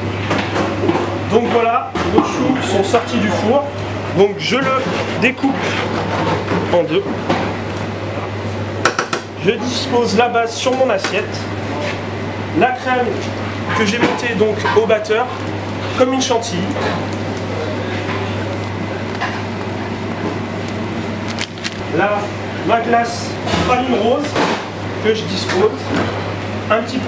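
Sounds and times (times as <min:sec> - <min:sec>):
low mechanical hum: 0:00.0 - 0:27.0
knife sawing through pastry: 0:04.8 - 0:06.4.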